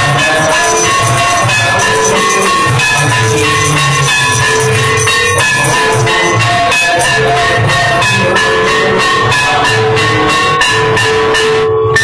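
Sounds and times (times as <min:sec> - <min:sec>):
sustained ringing tones: 0:00.0 - 0:10.0
bells and cymbals struck: 0:00.0 - 0:12.0.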